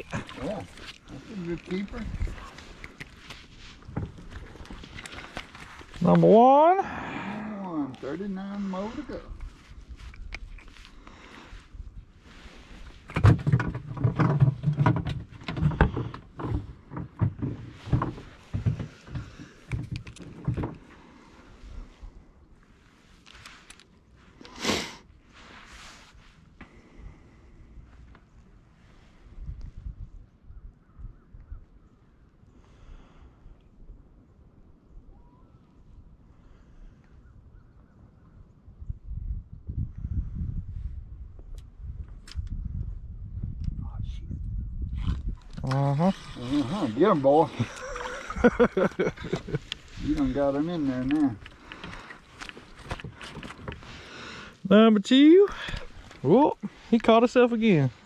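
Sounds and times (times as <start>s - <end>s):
knocks and thumps on boat: 13.1s - 20.8s.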